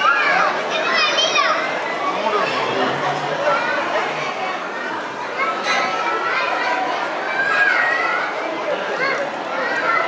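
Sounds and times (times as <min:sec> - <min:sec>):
children chattering and calling out: 0:00.0 - 0:10.0
murmur of adult voices: 0:00.0 - 0:10.0.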